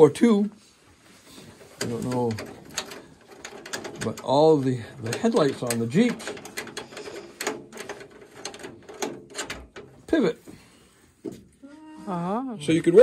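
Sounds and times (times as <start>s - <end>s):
light metallic clicks and clanks: 1.5s - 10.6s.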